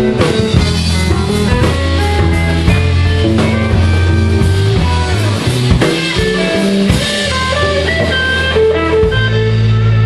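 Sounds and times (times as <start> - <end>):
bass line: 0.0 - 10.0
electric guitar blues lead: 0.0 - 10.0.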